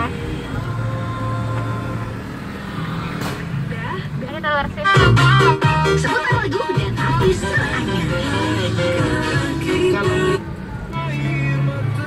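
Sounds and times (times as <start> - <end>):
car cabin hum: 0.0 - 2.6, 3.4 - 12.0.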